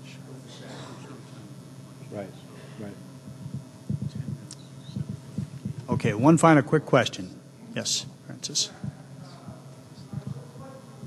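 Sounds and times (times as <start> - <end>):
faint room hum: 0.0 - 11.0
soft low thumps: 3.2 - 6.1, 8.8 - 10.5.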